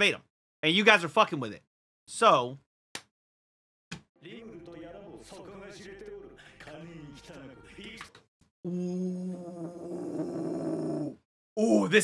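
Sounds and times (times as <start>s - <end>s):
man's drawn-out ooh: 8.7s - 11.9s.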